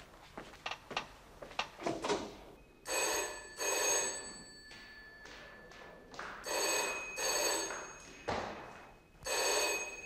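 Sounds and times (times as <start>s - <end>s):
landline telephone ringing: 2.8s - 5.7s, 6.4s - 10.0s.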